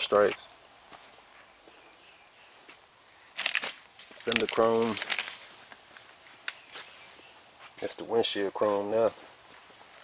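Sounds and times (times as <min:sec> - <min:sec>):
plastic bags crinkling: 0:03.4 - 0:05.6.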